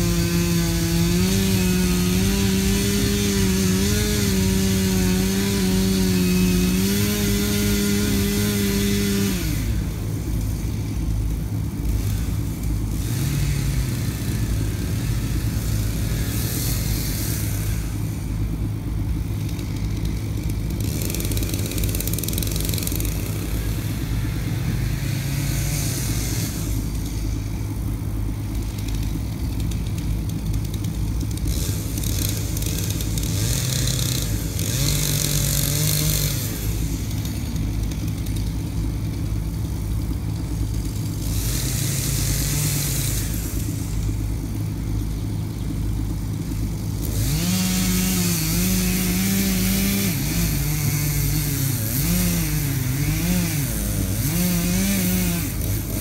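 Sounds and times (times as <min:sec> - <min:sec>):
chain cutting wood rasping: 0:00.0 - 0:56.0
chainsaw running and revving: 0:00.0 - 0:56.0.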